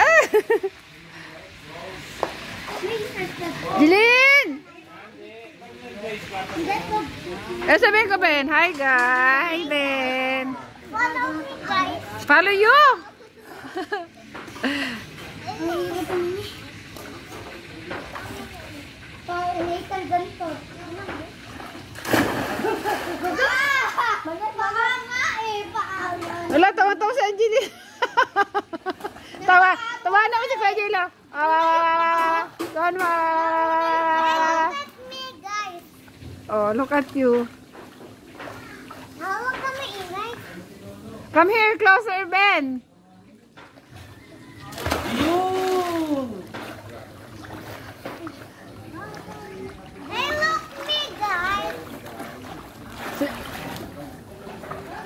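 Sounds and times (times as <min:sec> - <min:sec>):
outdoor noise: 0:00.0 - 0:55.0
pool water splash: 0:00.0 - 0:55.0
children calling out: 0:23.2 - 0:26.2
faint background voices: 0:42.8 - 0:55.0.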